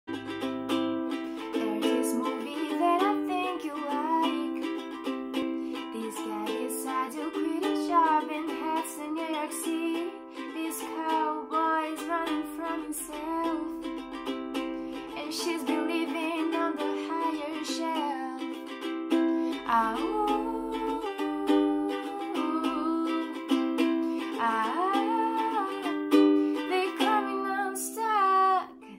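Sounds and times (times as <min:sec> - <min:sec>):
ukulele strumming: 0:00.1 - 0:28.9
woman singing: 0:01.1 - 0:05.1, 0:05.7 - 0:14.1, 0:14.9 - 0:28.9.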